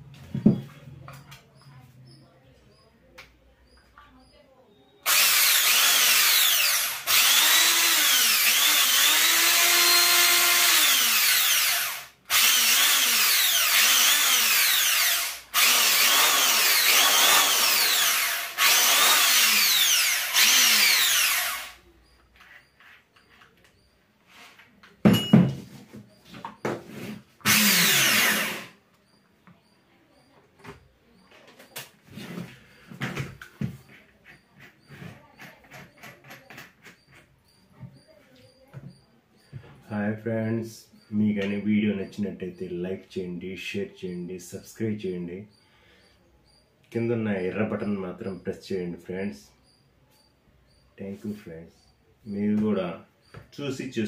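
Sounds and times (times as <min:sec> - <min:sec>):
electric drill running: 0:05.1 - 0:21.8, 0:27.4 - 0:28.8
drill clicks: 0:05.1 - 0:23.8, 0:27.4 - 0:28.8.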